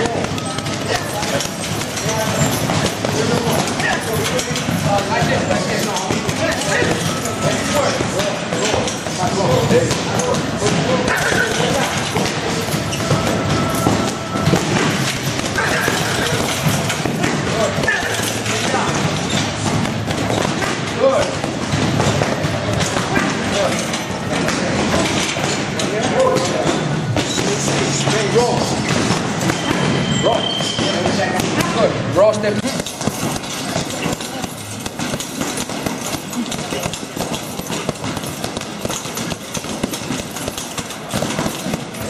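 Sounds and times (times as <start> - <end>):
gloves punching heavy bag: 0.0 - 42.0
gym voices: 0.0 - 42.0.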